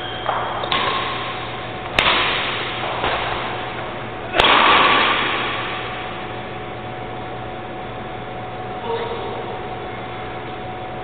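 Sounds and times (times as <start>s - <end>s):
racket striking shuttlecock: 0.0s - 6.0s.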